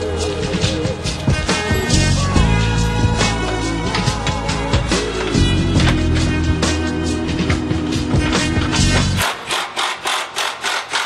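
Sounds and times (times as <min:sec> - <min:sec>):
music track: 0:00.0 - 0:09.2
hand tool rasping on metal: 0:09.0 - 0:11.0.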